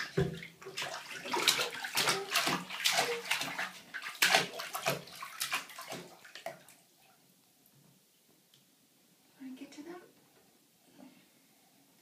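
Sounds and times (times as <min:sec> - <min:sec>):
bathwater splashing: 0:00.0 - 0:07.1.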